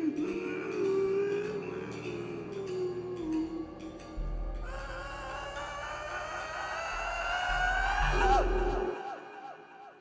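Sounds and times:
singer holding long note: 0:00.0 - 0:10.0.

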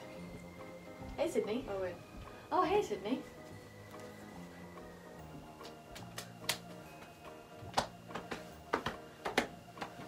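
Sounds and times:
soft background music: 0:00.0 - 0:10.0
hand claps and slaps: 0:05.6 - 0:10.0.

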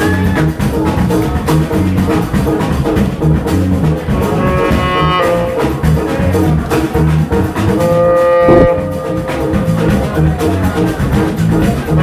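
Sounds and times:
drum kit: 0:00.0 - 0:12.0
walking electric bass: 0:00.0 - 0:12.0
saxophone long note: 0:04.1 - 0:06.0, 0:07.7 - 0:10.3.

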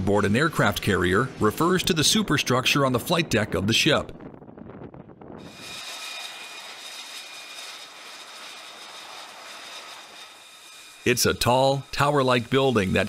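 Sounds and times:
high whine tones: 0:05.4 - 0:13.0
jet engine rushing hiss: 0:05.4 - 0:13.0.

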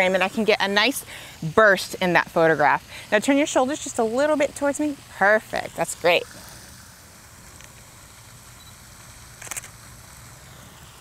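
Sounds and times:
camera shutter click: 0:09.4 - 0:09.8.

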